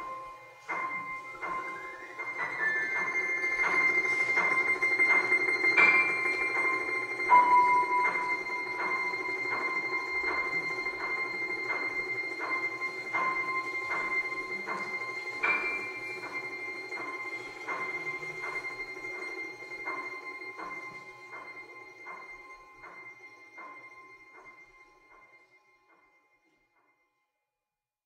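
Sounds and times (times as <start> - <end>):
piano: 0.0 - 25.3.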